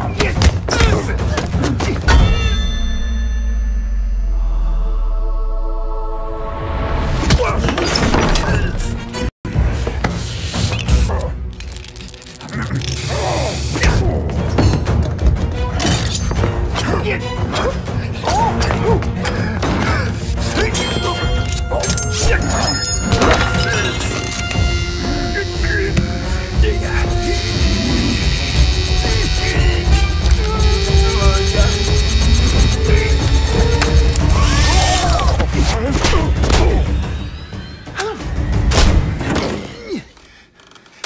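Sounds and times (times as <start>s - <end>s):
background film music: 0.0s - 41.0s
electric hair clippers buzzing: 24.2s - 34.2s
aerosol spray can hissing: 24.6s - 32.9s.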